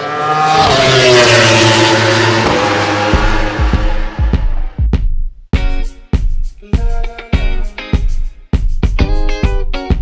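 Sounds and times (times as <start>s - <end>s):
high-revving engine passing by: 0.0s - 4.8s
thumping bass drum: 2.5s - 7.0s.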